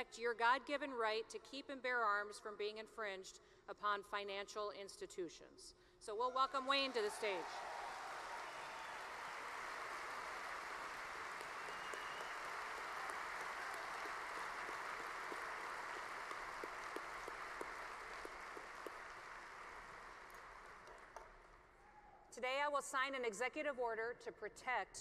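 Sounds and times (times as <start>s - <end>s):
audience applauding: 6.4s - 21.7s.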